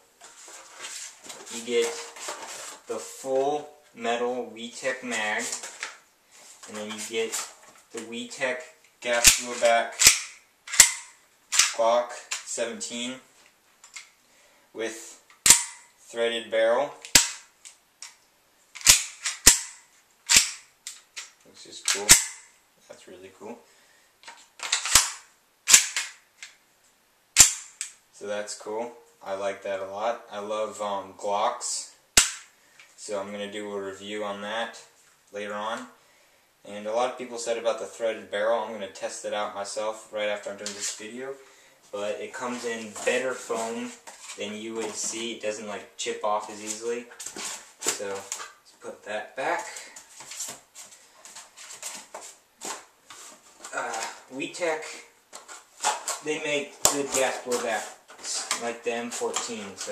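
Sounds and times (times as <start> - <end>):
rustling and handling noises: 0.0 - 3.9, 4.6 - 10.1, 40.4 - 59.9
pistol action clacks: 9.2 - 12.4, 15.4 - 15.8, 18.8 - 22.4, 24.6 - 26.2, 27.4 - 28.0, 32.2 - 32.5.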